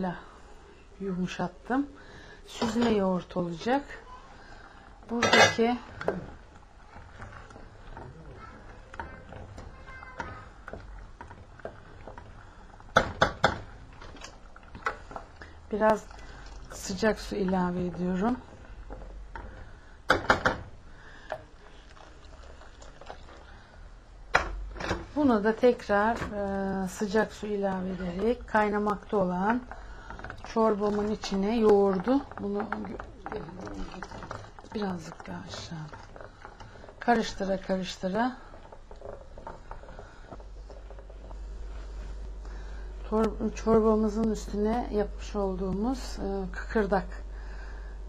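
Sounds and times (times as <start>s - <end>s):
low steady hum: 0.0s - 48.0s
wooden spoon stirring metal pot: 0.0s - 48.0s
kitchenware clinking: 5.1s - 6.3s.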